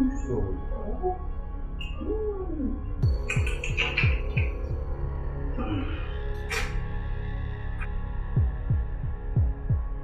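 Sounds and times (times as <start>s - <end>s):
steady low drone: 0.0s - 10.0s
heartbeat thumps: 3.0s - 4.9s, 8.4s - 10.0s.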